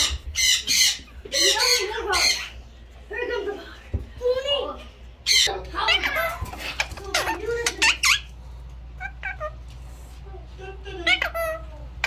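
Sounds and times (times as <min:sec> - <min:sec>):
parakeet calling: 0:00.0 - 0:02.7, 0:05.2 - 0:09.6, 0:10.9 - 0:12.0.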